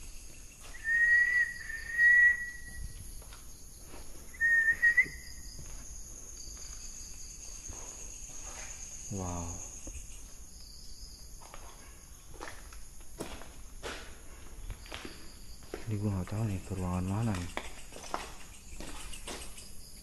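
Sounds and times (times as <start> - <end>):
crickets chirping: 0.0 - 20.0
person whistling: 0.8 - 2.8, 4.4 - 5.3.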